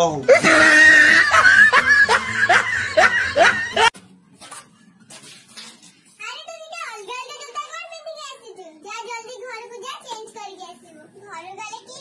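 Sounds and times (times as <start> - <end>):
man laughing: 0.3 - 3.9.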